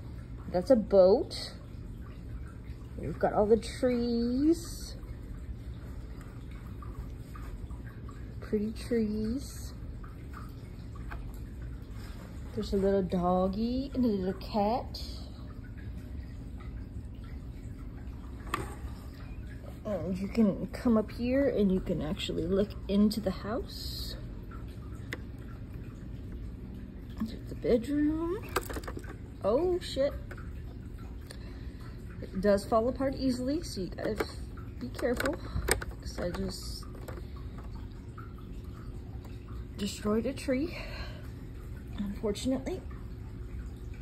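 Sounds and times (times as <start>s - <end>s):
plastic bricks clicking: 28.5s - 29.2s.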